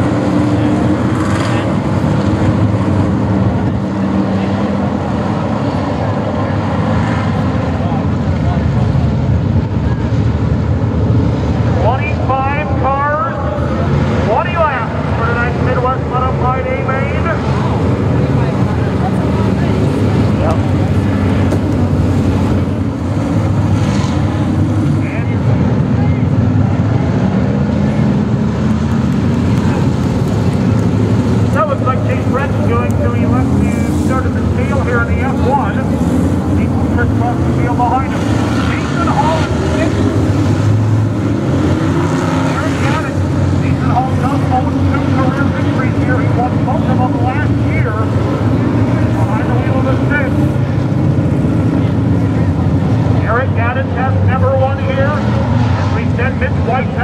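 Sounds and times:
race car engines: 0:00.0 - 0:57.0
voices: 0:11.8 - 0:22.8, 0:24.9 - 0:26.4, 0:31.4 - 0:40.5, 0:42.4 - 0:50.6, 0:51.6 - 0:55.3, 0:55.9 - 0:57.0.

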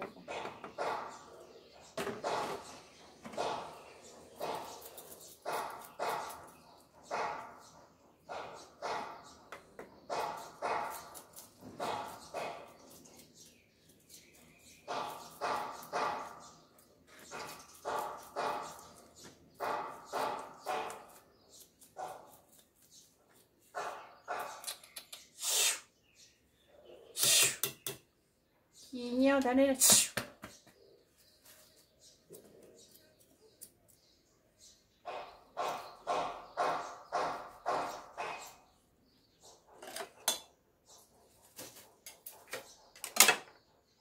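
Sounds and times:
dog barking: 0:00.8 - 0:01.5, 0:05.4 - 0:07.7, 0:08.3 - 0:09.4, 0:10.1 - 0:11.2, 0:11.8 - 0:12.7, 0:14.9 - 0:16.5, 0:17.3 - 0:18.9, 0:19.6 - 0:21.2, 0:22.0 - 0:22.4, 0:23.7 - 0:24.6.

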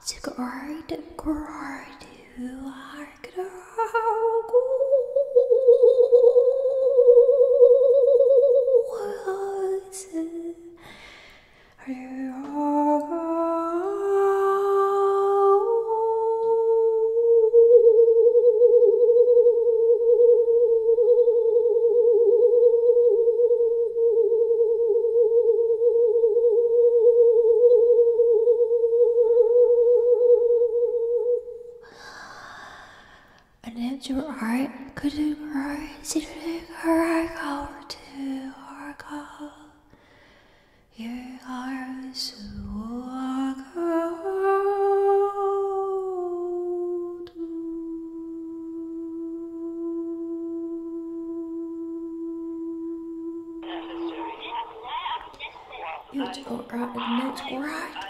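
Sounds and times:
woman humming: 0:44.0 - 0:55.5, 0:56.1 - 0:58.0.

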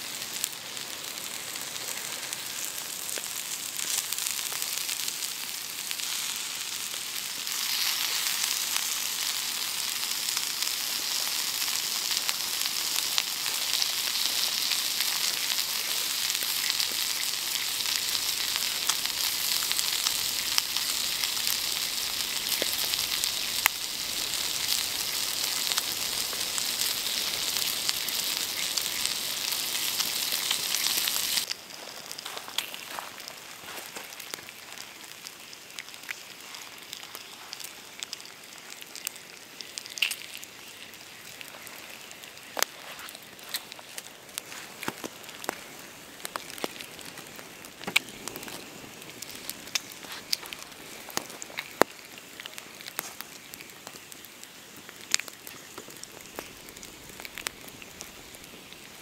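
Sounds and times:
bacon sizzling: 0:00.0 - 0:59.0.

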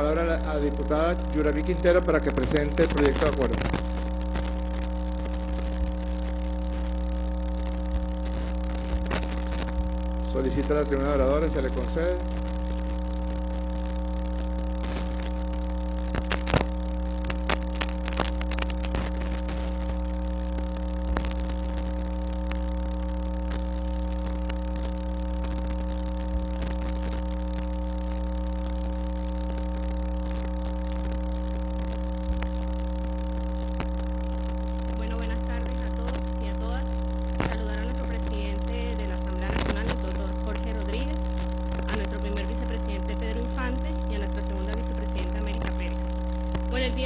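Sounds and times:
electrical mains hum: 0:00.0 - 0:47.0.

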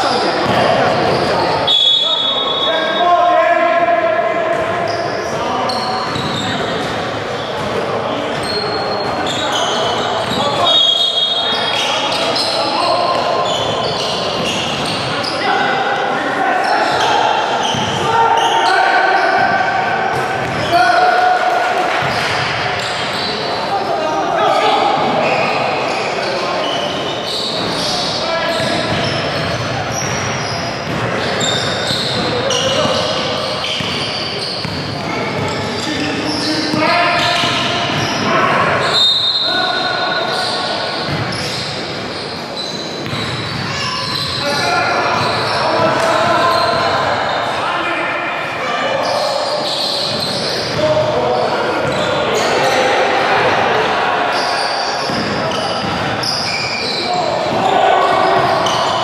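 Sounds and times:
sneaker squeaks: 0:00.0 - 0:03.2, 0:04.5 - 0:15.8, 0:16.6 - 0:21.0, 0:22.0 - 0:23.8, 0:24.5 - 0:47.8, 0:48.4 - 0:52.9, 0:54.3 - 0:59.0.

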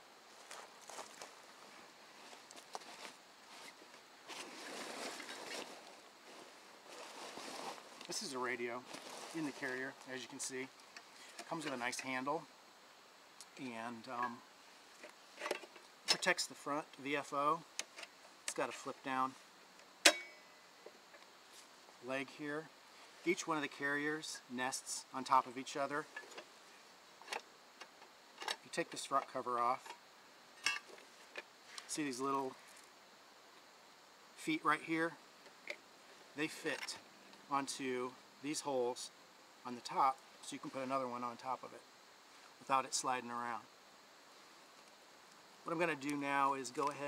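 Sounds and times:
rucksack rustling: 0:00.3 - 0:12.3.

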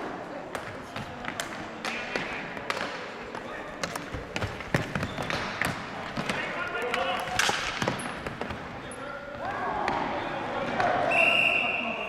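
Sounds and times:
sticks and ball clacking: 0:00.5 - 0:08.7
shoe squeaks: 0:04.9 - 0:05.4.

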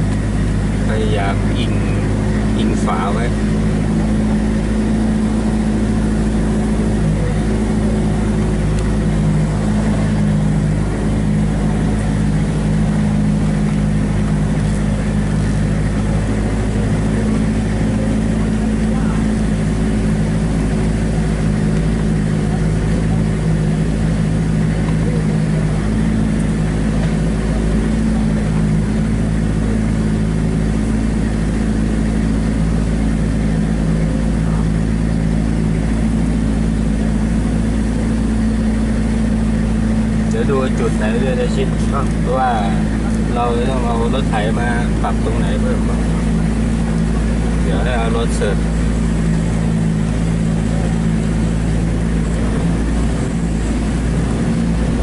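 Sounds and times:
vehicle engine running at low speed: 0:00.0 - 0:55.0.

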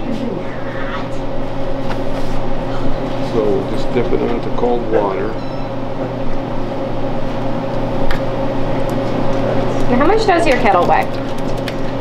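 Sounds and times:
kitchen machinery humming: 0:00.0 - 0:12.0.

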